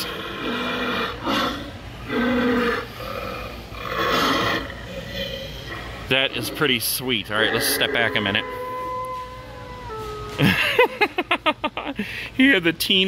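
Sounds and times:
recorded wolf growls: 0:00.0 - 0:08.6.

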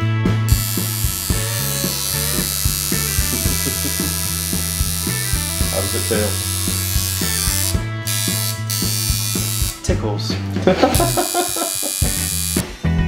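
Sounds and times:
rock music with steady beat: 0:00.0 - 0:13.0
tattoo machine buzzing: 0:00.5 - 0:09.9, 0:10.8 - 0:12.7.

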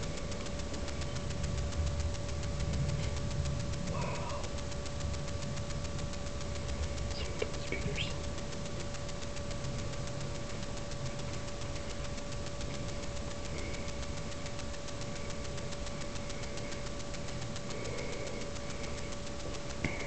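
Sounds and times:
constant hiss: 0:00.0 - 0:20.0
electrical whine: 0:00.0 - 0:20.0
fast even ticking: 0:00.0 - 0:20.0.

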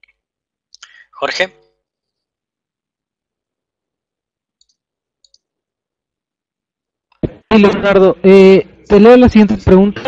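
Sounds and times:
computer mouse clicks: 0:04.6 - 0:05.5.

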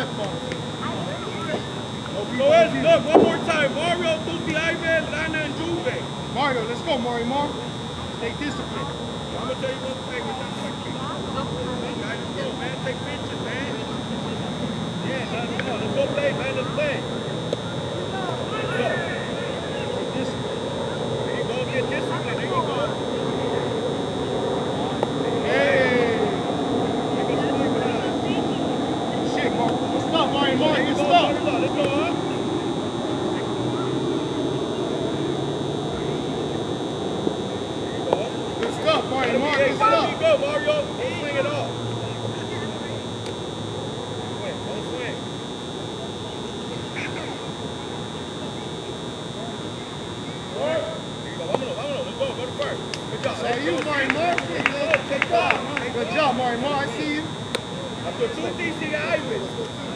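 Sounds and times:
indistinct voices: 0:00.0 - 0:59.9
steady high-pitched whine: 0:00.0 - 0:59.9
people shouting and calling: 0:15.0 - 0:42.7.

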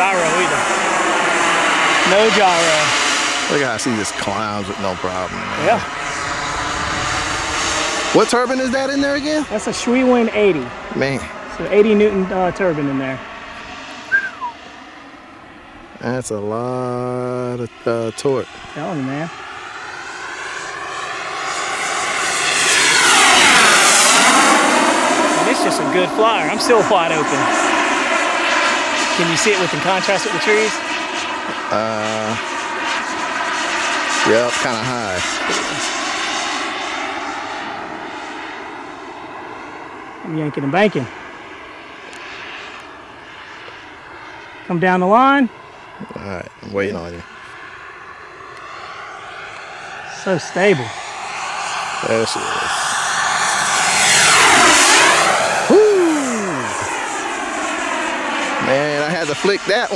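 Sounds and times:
model jet turbine flying overhead: 0:00.0 - 0:59.9
short falling call: 0:55.6 - 0:57.0.

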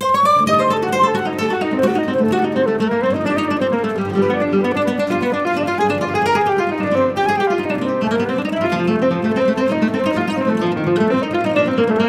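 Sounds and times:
flute melody: 0:00.0 - 0:12.0.

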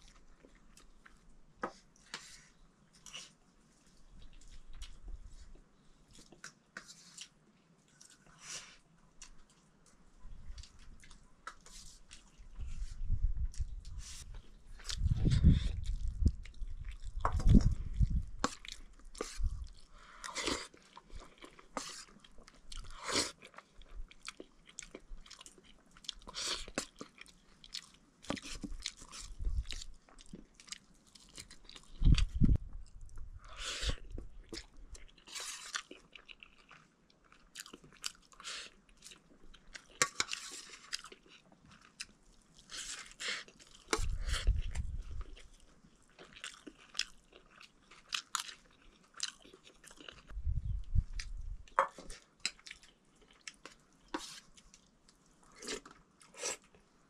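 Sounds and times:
mouth chewing: 0:07.9 - 0:56.8.

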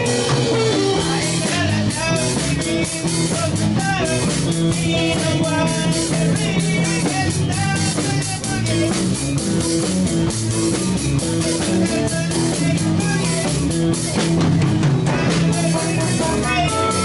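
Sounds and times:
rock band playing: 0:00.0 - 0:17.0.

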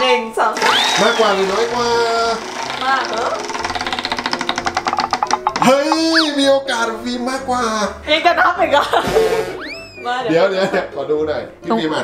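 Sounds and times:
prize wheel pegs clicking: 0:01.1 - 0:06.2.

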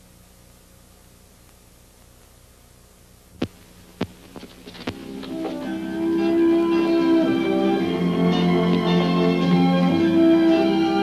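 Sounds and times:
low steady hum: 0:00.0 - 0:11.0
guitar music: 0:04.8 - 0:11.0.

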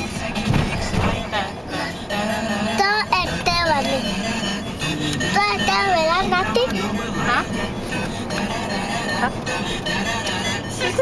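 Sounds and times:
car cabin road and engine noise: 0:00.0 - 0:11.0
girl's voice: 0:05.4 - 0:07.4.

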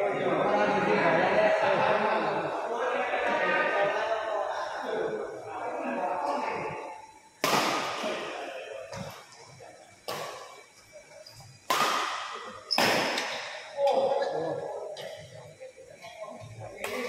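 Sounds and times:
badminton rackets hitting shuttlecock: 0:11.7 - 0:13.7.

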